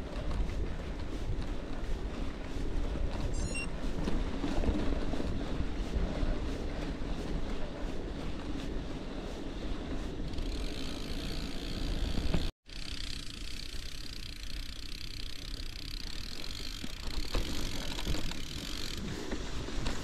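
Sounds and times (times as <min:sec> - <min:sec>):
tyres rolling on dirt track: 0:00.0 - 0:20.0.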